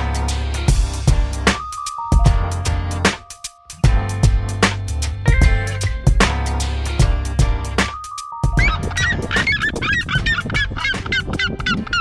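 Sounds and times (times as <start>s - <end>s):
birds yelping calls: 8.4s - 12.0s.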